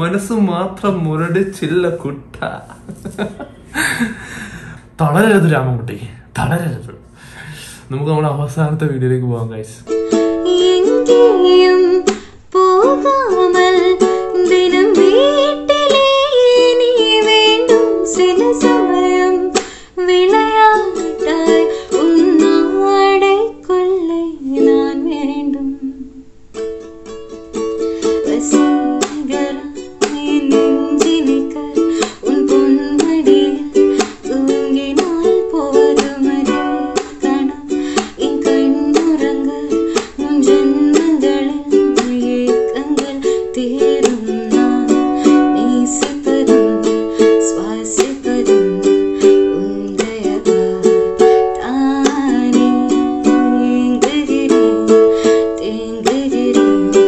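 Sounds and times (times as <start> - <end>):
ukulele strumming: 9.3 - 57.0
woman singing: 10.0 - 26.3, 27.9 - 57.0.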